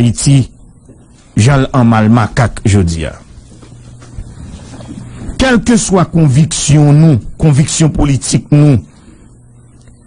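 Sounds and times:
man speaking: 0.0s - 0.6s, 1.4s - 3.3s, 5.4s - 8.9s
faint low hum: 0.0s - 10.0s.

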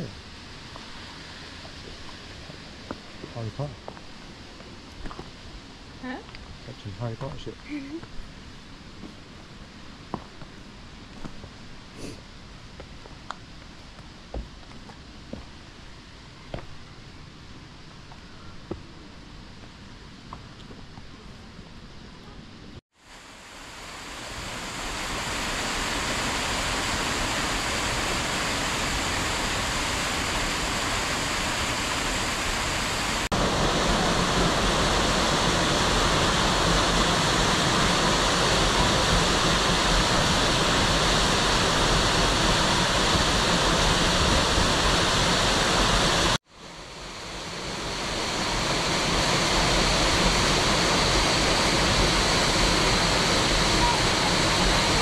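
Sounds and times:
waterfall roaring: 23.3s - 55.0s.

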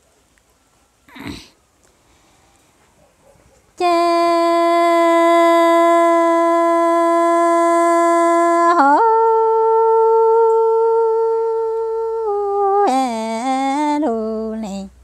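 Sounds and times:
woman singing unaccompanied: 3.8s - 15.0s.

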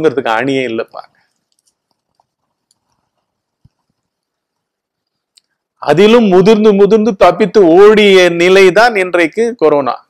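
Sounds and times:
man speaking: 0.0s - 1.1s, 5.8s - 10.0s
faint small clicks: 1.3s - 5.6s.

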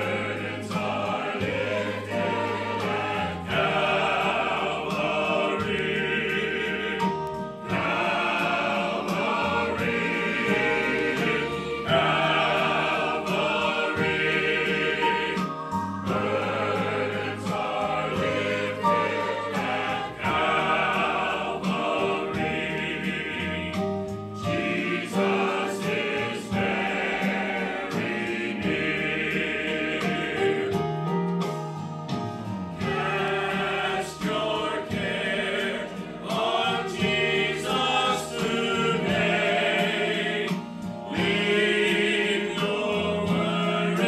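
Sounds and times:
church choir singing a hymn: 0.0s - 44.0s.

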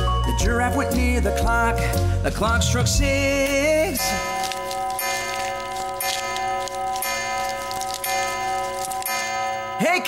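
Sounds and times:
grandfather clock chiming: 4.0s - 10.0s.

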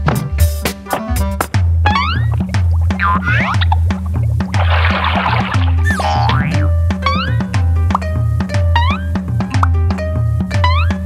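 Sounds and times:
bouncy cartoon music: 0.0s - 11.0s
springy rising boing effects: 1.8s - 8.1s, 8.7s - 9.7s, 10.6s - 11.0s
splash-like hiss: 4.5s - 5.9s.

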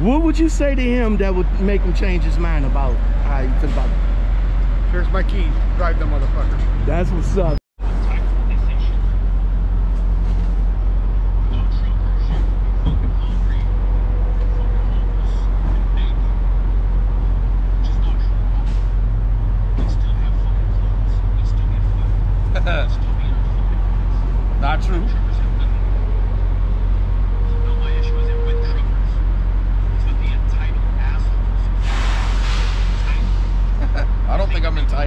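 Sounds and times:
vehicle engines idling: 0.0s - 35.0s.

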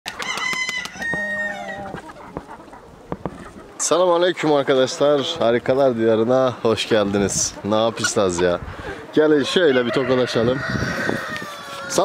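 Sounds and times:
rooster crowing: 0.1s - 2.0s, 9.5s - 12.0s
chickens clucking: 0.1s - 12.0s.

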